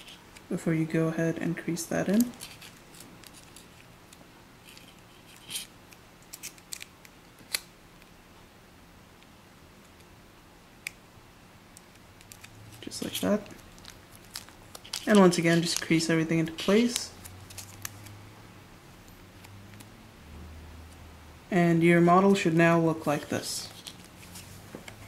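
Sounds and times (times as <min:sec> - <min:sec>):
faint steady hum: 0:00.0 - 0:25.0
paper crackling as folded: 0:02.1 - 0:03.9, 0:12.2 - 0:18.2.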